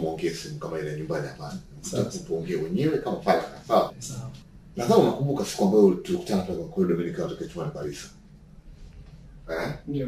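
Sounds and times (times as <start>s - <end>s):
man's voice: 0.0s - 8.0s.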